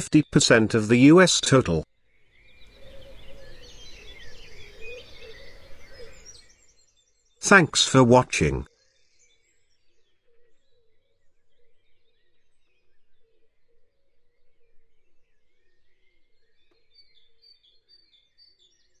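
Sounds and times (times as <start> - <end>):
faint bird chirps: 2.2 - 7.4, 8.8 - 19.0.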